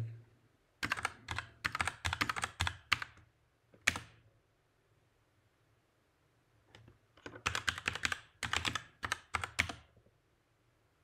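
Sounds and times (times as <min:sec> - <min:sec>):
computer keyboard typing: 0:00.8 - 0:04.2, 0:06.8 - 0:09.9.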